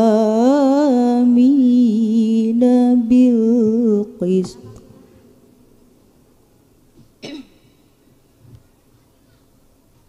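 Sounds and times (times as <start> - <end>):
person clearing throat: 7.2 - 7.7.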